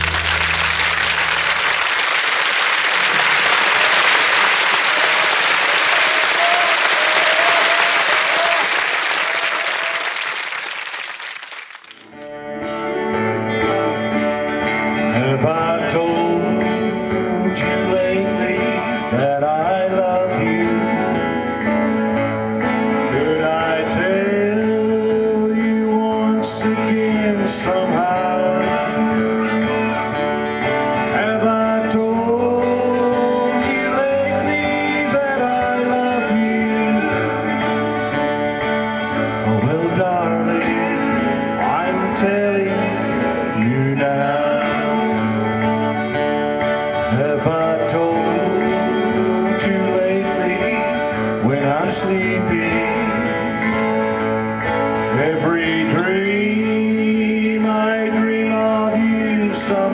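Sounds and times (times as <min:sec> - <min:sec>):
audience applause: 0:00.0 - 0:12.3
strummed acoustic guitar: 0:12.1 - 0:59.9
man singing: 0:13.5 - 0:45.7, 0:46.6 - 0:59.9.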